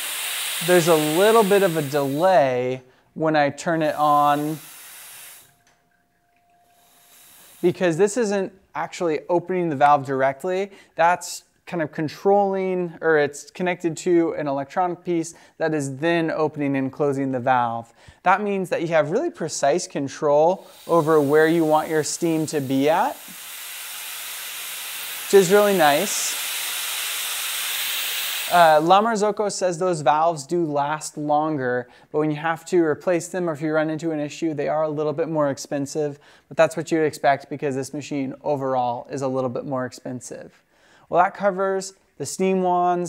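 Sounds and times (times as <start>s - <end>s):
espresso machine steam wand hissing: 0.0s - 2.5s, 3.8s - 5.6s, 6.6s - 7.9s, 20.6s - 29.1s.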